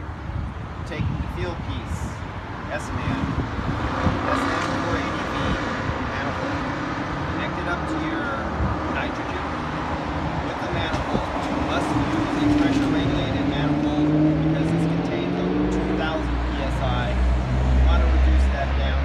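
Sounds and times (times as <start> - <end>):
traffic noise: 0.0 - 19.0.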